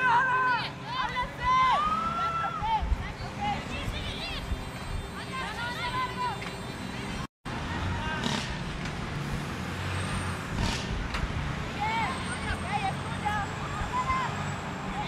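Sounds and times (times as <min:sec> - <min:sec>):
players shouting: 0:00.0 - 0:08.4.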